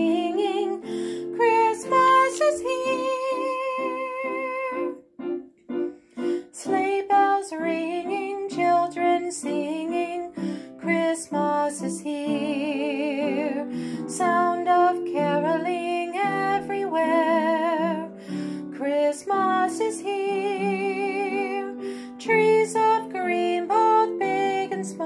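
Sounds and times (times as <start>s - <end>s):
piano melody over chords: 0.0s - 25.0s.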